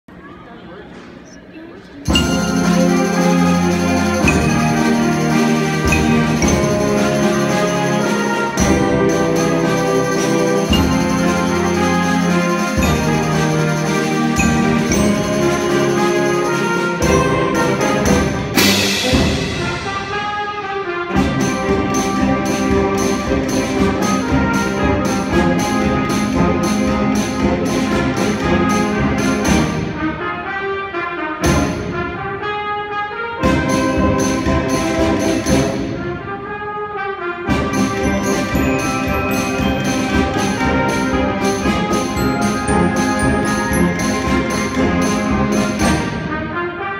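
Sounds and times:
concert band playing: 2.0 - 32.5, 33.4 - 36.6, 37.4 - 46.9
sharp percussion strokes: 2.1 - 30.0, 33.5 - 36.0, 37.6 - 46.4.

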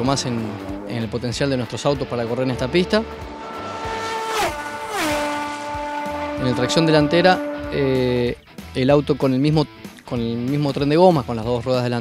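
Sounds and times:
race car passing by: 0.0 - 8.5.

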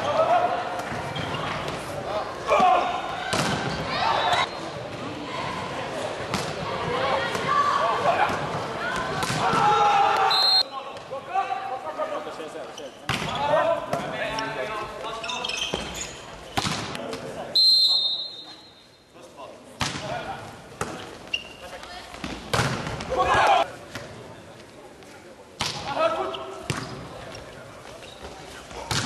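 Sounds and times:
players shouting: 6.6 - 11.9, 23.0 - 23.7
referee's whistle: 10.3 - 10.7, 17.6 - 19.0.

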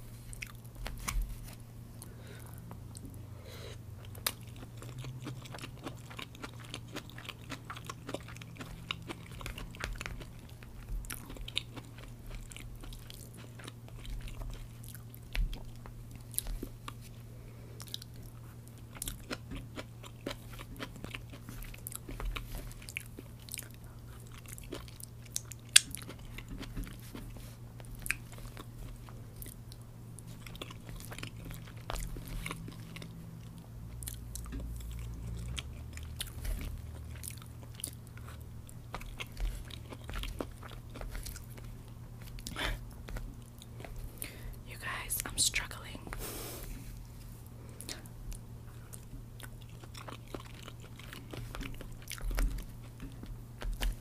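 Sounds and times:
steady low hum: 0.0 - 54.0
chewing fried rice: 0.1 - 3.2, 3.8 - 44.7, 46.2 - 54.0.

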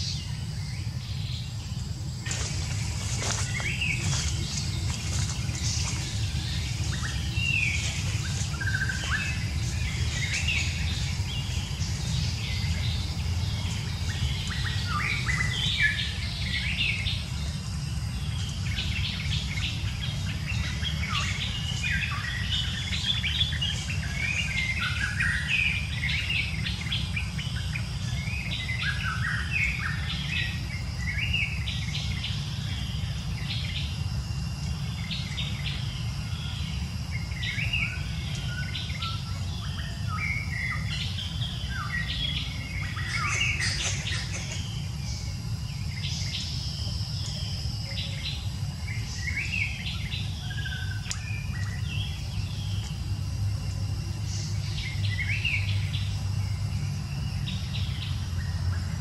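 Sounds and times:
small birds chirping: 0.0 - 59.0.

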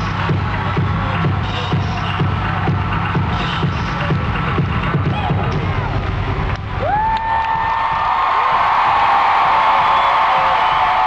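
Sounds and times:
crowd cheering and screaming: 6.7 - 11.0.

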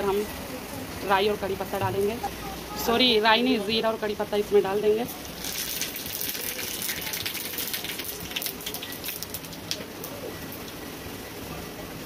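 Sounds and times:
seeds sizzling in hot fat: 5.1 - 9.9.

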